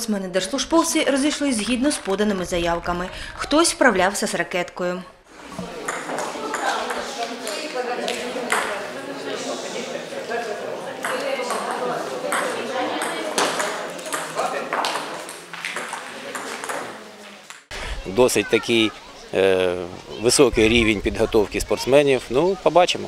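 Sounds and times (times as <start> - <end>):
indistinct chatter: 5.3 - 23.0
table tennis balls clicking: 5.6 - 8.7, 11.0 - 17.6.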